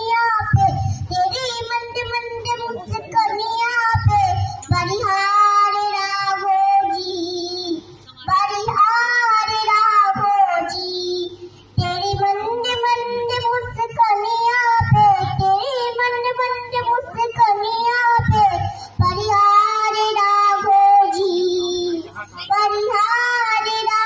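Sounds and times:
girl singing into a microphone: 0:00.0 - 0:24.0.

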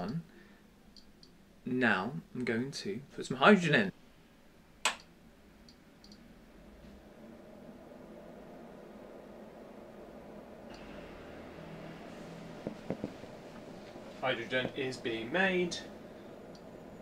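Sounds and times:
low even hum: 0:00.0 - 0:17.0
faint high whine: 0:05.2 - 0:17.0.

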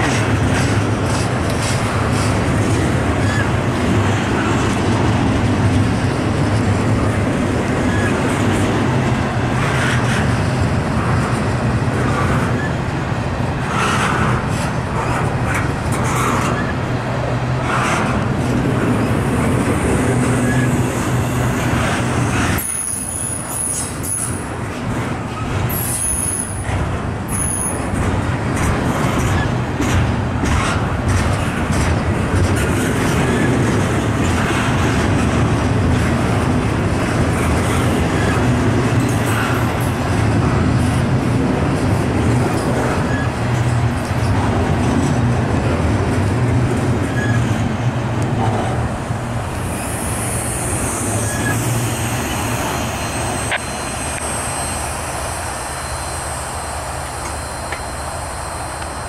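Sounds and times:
freight train wheels rumbling: 0:00.0 - 0:59.0
train clicks and clanks: 0:00.0 - 0:59.0.

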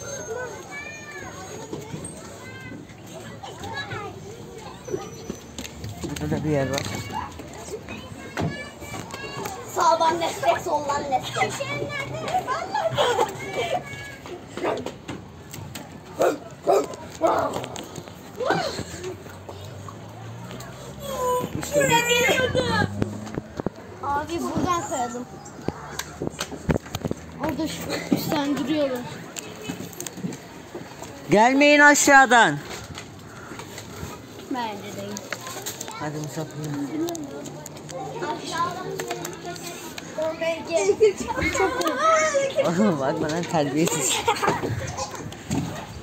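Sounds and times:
children calling and chattering: 0:00.0 - 0:46.0.

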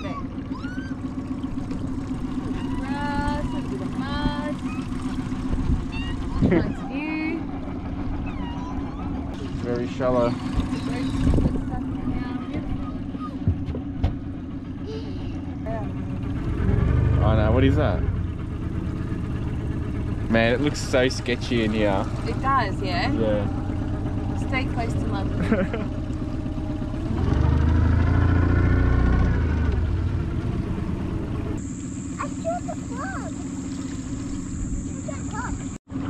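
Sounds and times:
outboard motor running: 0:00.0 - 0:36.0.

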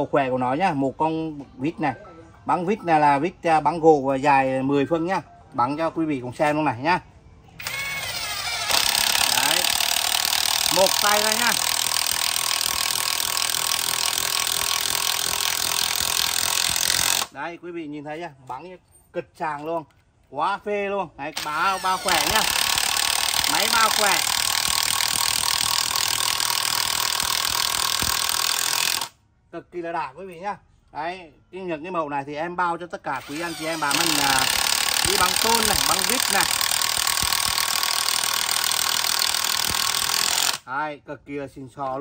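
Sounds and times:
impact wrench motor whine: 0:07.6 - 0:17.3, 0:21.4 - 0:29.1, 0:33.2 - 0:40.6.

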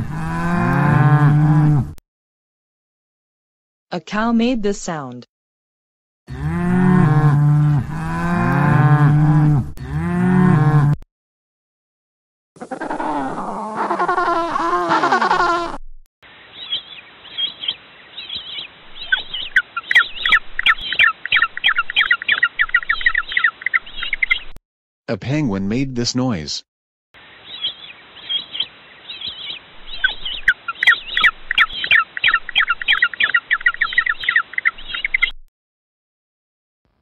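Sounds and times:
cow mooing: 0:00.0 - 0:02.0, 0:06.3 - 0:11.0
high penguin calls: 0:12.6 - 0:15.8.

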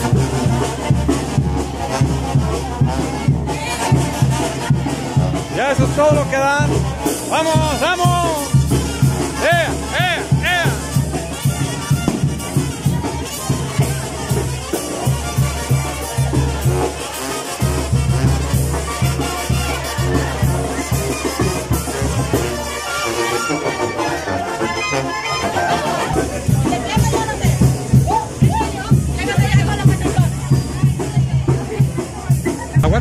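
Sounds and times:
crowd voices: 0:00.0 - 0:33.0
live brass band with trumpets: 0:00.0 - 0:33.0.

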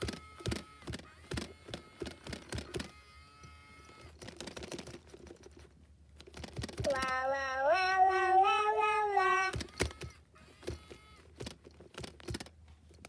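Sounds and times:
clicks and taps handling plastic toy: 0:00.0 - 0:07.3, 0:09.2 - 0:13.0.

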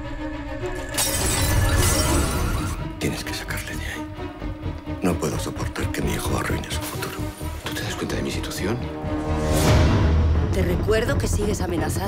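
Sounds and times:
trailer music with steady tones: 0:00.0 - 0:12.0.

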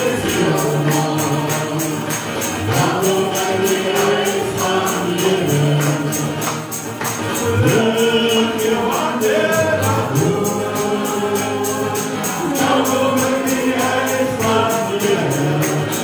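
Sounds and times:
choir singing a hymn: 0:00.0 - 0:16.0
tambourine beat: 0:00.0 - 0:16.0.

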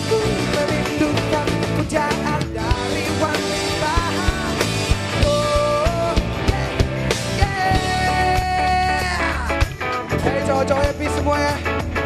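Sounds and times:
drum kit beat: 0:00.0 - 0:12.0
electric guitar: 0:00.0 - 0:12.0
man singing: 0:00.0 - 0:12.0.

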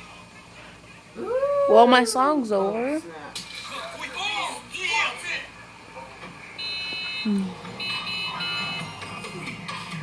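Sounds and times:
television music: 0:00.0 - 0:10.0
voices: 0:00.3 - 0:03.0
high steady electronic tone: 0:06.6 - 0:08.9.

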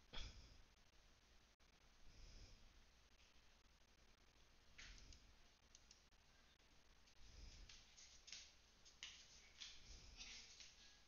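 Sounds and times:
soft clicks: 0:04.8 - 0:06.1.

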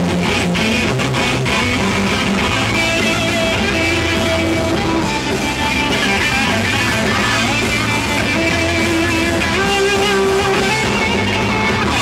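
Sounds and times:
electric guitar: 0:00.0 - 0:12.0
heavy metal band playing live: 0:00.0 - 0:12.0.

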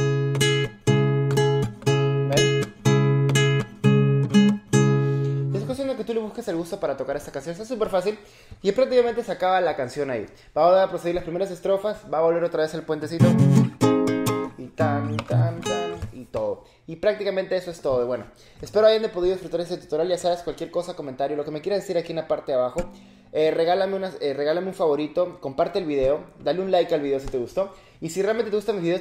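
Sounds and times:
classical guitar fingerpicked chords: 0:00.0 - 0:05.6, 0:13.2 - 0:16.0.

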